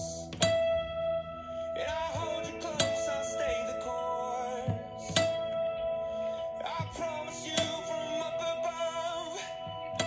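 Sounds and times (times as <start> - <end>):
acoustic guitar strummed: 0.0 - 10.0
person singing: 1.6 - 10.0.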